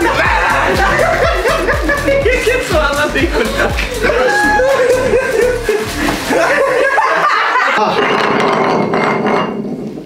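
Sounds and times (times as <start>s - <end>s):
glass bottle spinning on tile: 7.8s - 10.0s.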